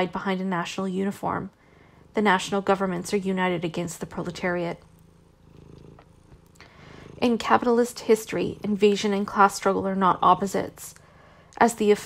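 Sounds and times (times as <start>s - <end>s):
faint pulsing low rumble: 0.0s - 12.0s.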